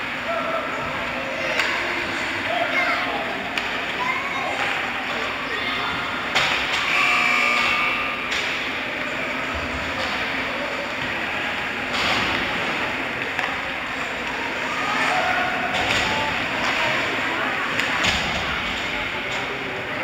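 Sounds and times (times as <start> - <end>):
distant shouting and chatter: 0.0 - 20.0
steady noisy hum: 0.0 - 20.0.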